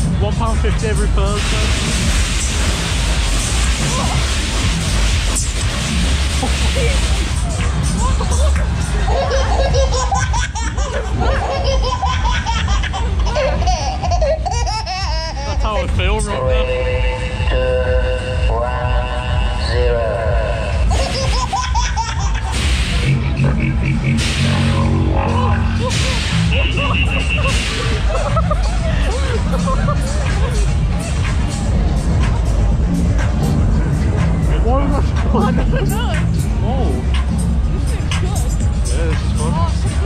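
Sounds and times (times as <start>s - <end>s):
loud fairground music: 0.0s - 40.0s
steady low rumble: 0.0s - 40.0s
riders laughing: 6.3s - 15.6s, 20.6s - 24.1s, 24.7s - 31.4s, 35.0s - 36.3s.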